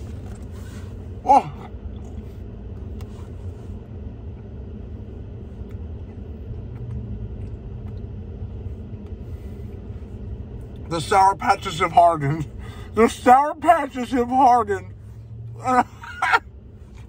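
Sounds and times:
vehicle engine idling: 0.0s - 17.0s.

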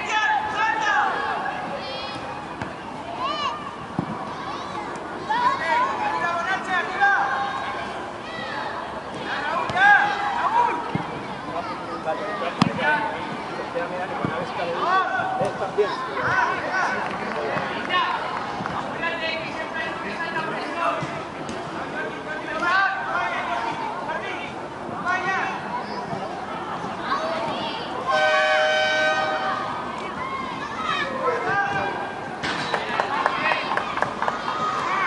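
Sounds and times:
outdoor background noise: 0.0s - 35.0s
people chattering and calling out: 0.0s - 35.0s
shouting and cheering voices: 0.0s - 35.0s
spectators clapping in rhythm: 32.7s - 34.5s.

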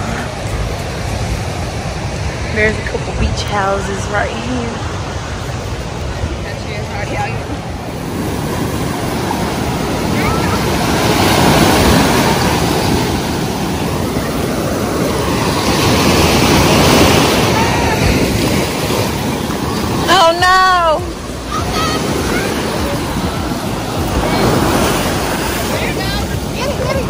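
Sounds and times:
ocean surf breaking on shore: 0.0s - 27.0s.

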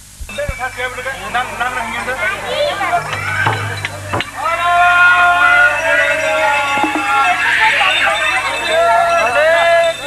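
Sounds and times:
procession music: 0.3s - 10.0s
voices: 0.3s - 10.0s
long steady high note: 2.5s - 10.0s
low hum: 2.8s - 6.0s.

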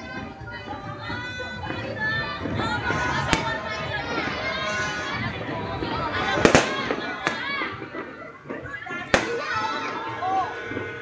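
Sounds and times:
fireworks exploding: 0.0s - 11.0s
voices nearby: 0.0s - 11.0s.

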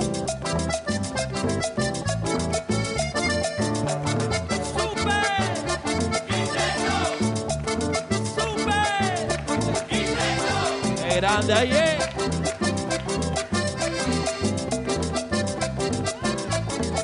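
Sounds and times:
cumbia band music: 0.0s - 17.0s.

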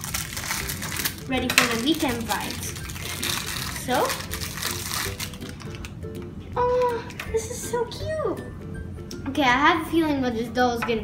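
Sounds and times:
packet torn open: 0.0s - 6.0s
wrapper rustling and crackling: 0.0s - 6.1s
soft background music: 0.0s - 11.0s.

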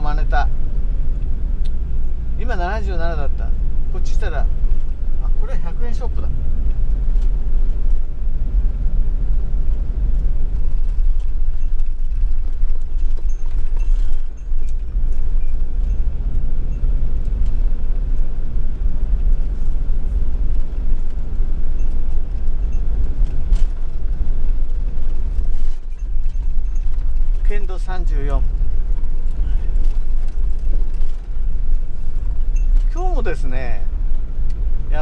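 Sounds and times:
van engine and tyres rumbling: 0.0s - 35.0s.

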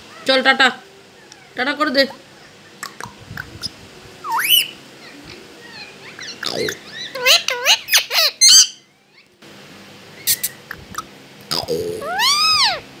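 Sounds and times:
parakeet calling: 1.2s - 9.4s, 10.1s - 13.0s.

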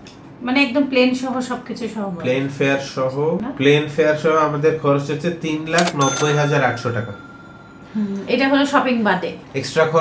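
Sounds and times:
cash register chime: 5.7s - 8.8s.

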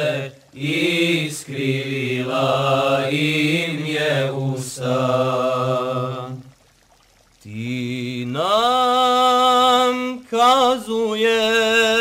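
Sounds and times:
low held vocal drone: 0.0s - 6.5s, 7.4s - 12.0s
men singing a cappella: 0.0s - 6.5s, 7.5s - 12.0s.

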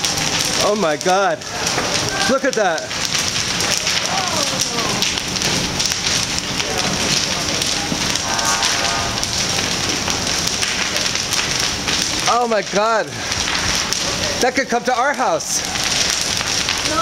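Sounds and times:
crackling of burning timber: 0.0s - 17.0s.

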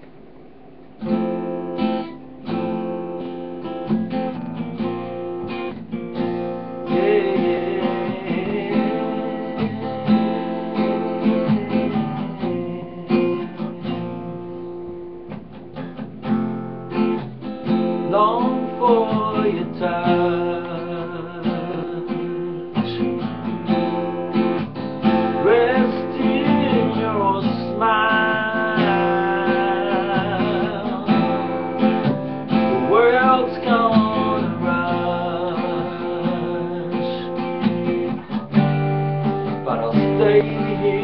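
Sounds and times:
acoustic guitar strumming: 0.0s - 41.0s
man singing: 6.8s - 14.4s, 17.9s - 24.0s, 25.0s - 38.5s, 39.4s - 41.0s.

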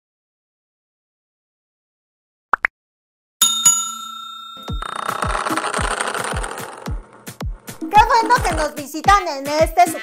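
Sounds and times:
notification ding: 3.4s - 5.4s.

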